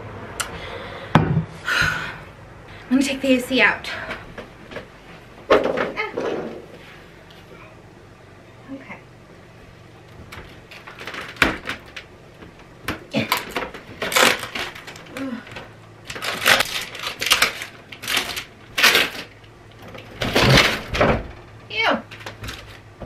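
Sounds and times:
plastic rattles and scrapes: 10.1 - 23.0.

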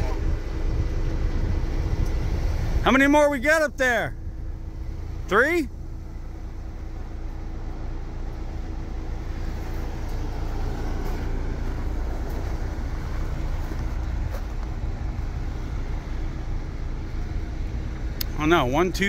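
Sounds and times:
suv engine rumbling: 0.0 - 19.0.

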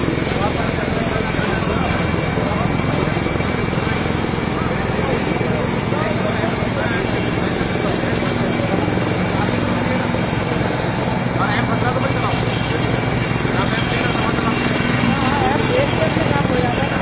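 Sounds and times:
engine-like drone: 0.0 - 17.0
faint voices talking: 0.0 - 17.0.

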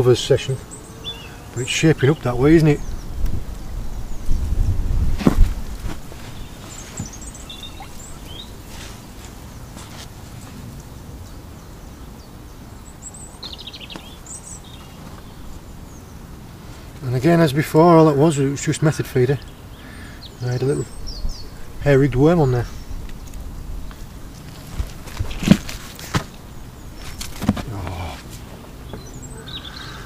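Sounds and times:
high bird chirps: 6.4 - 8.6.

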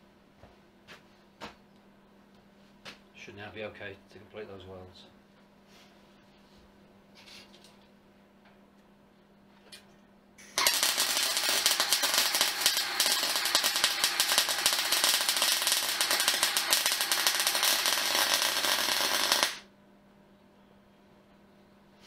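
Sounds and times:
arc welding crackle: 10.4 - 19.7.

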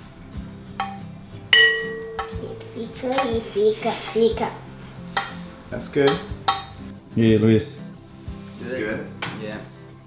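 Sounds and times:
spoon clinking against glass: 1.6 - 2.5.

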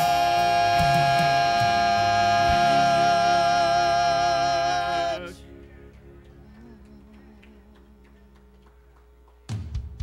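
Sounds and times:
gospel vocalists holding a note: 0.0 - 5.6
backing track with bass line: 0.0 - 8.9.

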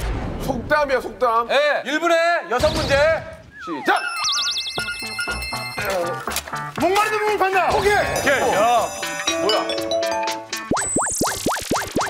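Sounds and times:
plinking musical notes: 3.9 - 6.6, 8.5 - 11.4
springy cartoon boings: 10.7 - 12.0.

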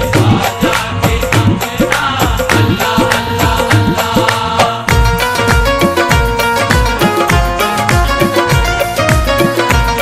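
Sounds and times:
hand drums playing fast rhythm: 0.0 - 10.0
sustained harmonium tones: 4.9 - 10.0.

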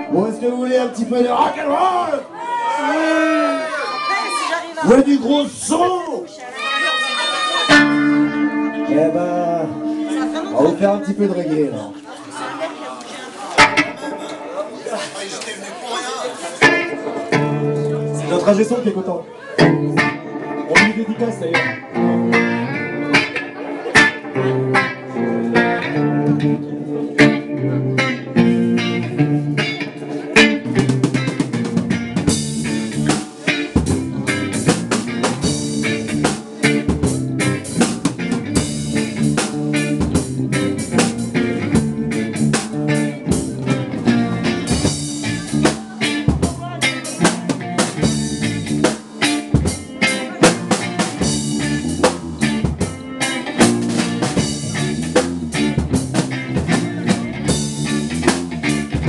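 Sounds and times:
bass guitar: 0.0 - 1.6, 6.6 - 12.0, 13.6 - 14.6, 16.5 - 59.0
electric guitar: 6.5 - 12.2, 13.6 - 14.8, 16.5 - 59.0
drums and cymbals: 30.4 - 59.0.

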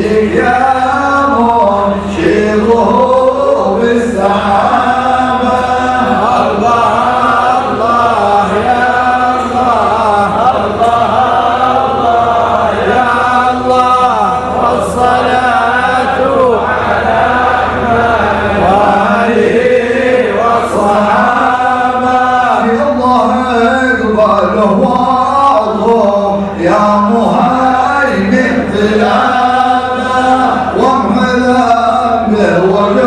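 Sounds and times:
men chanting a hymn: 0.0 - 33.0.

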